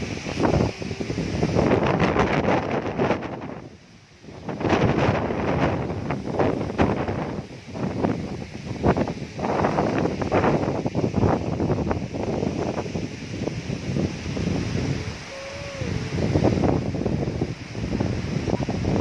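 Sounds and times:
wind gusting over microphone: 0.0s - 19.0s.

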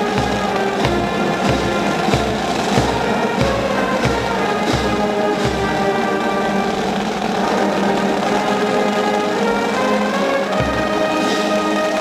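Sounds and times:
marching band holding chords: 0.0s - 12.0s.

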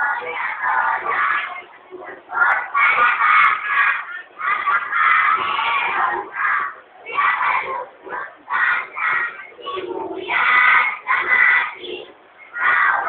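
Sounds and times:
children shouting: 0.0s - 13.0s.

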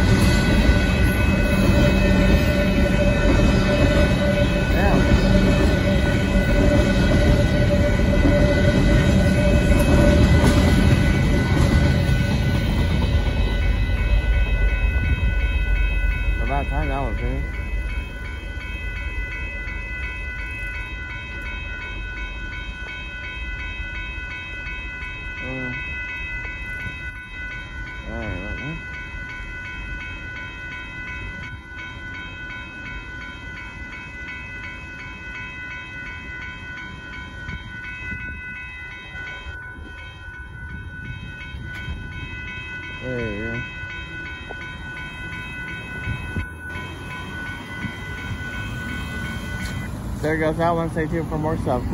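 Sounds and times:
crossing bell ringing: 0.0s - 51.9s
freight train rumbling: 0.0s - 51.9s.

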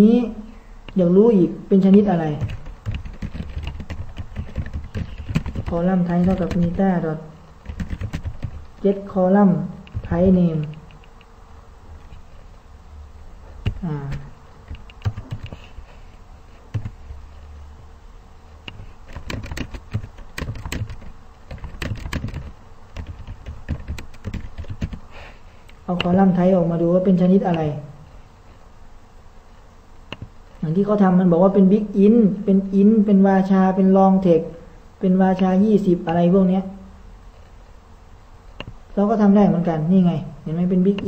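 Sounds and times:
typing on computer keyboard: 2.4s - 6.9s, 7.6s - 8.8s, 9.8s - 11.1s, 13.6s - 15.8s, 16.7s - 17.0s, 18.7s - 25.1s.

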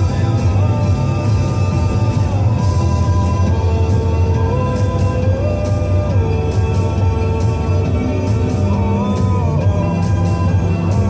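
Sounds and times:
song on radio broadcast: 0.0s - 11.0s.

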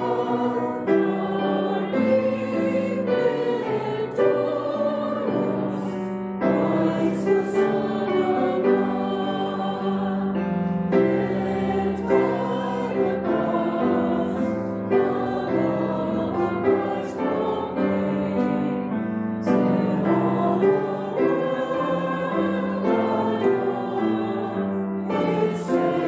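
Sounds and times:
group singing a hymn: 0.0s - 26.0s.

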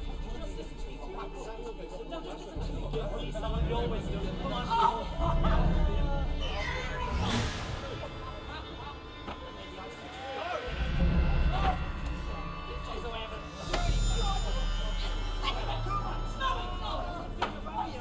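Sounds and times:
people exclaiming and crying out: 0.0s - 18.0s.

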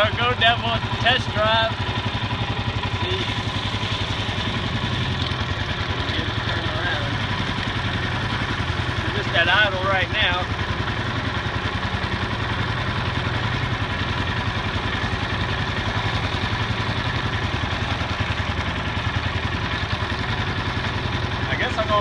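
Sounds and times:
small boat motor idling: 0.0s - 22.0s.

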